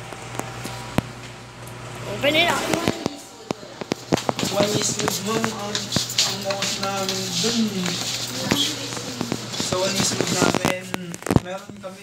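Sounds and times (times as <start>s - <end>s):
elevator car humming: 0.0s - 10.7s.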